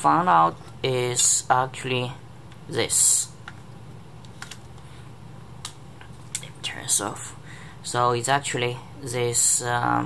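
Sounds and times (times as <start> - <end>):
tape deck hum: 0.0 - 6.5.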